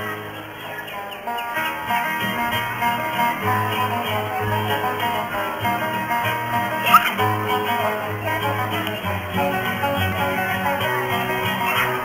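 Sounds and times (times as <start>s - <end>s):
acoustic guitars playing: 0.0s - 12.0s.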